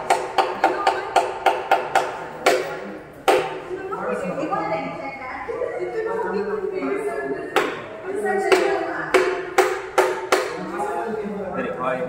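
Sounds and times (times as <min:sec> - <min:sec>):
mallet striking carving gouge: 0:00.0 - 0:03.6.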